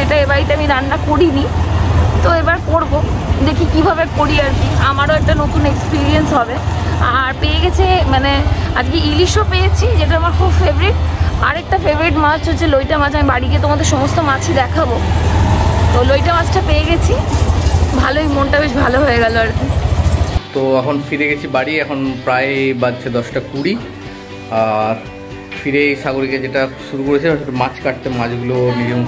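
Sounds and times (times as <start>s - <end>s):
woman speaking: 0.0s - 15.1s, 15.9s - 19.8s
traffic rumble: 0.0s - 20.4s
music with singing: 20.3s - 29.0s.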